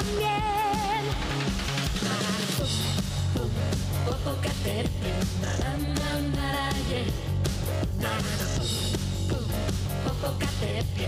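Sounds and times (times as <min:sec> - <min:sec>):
live pop-rock band: 0:00.0 - 0:11.0.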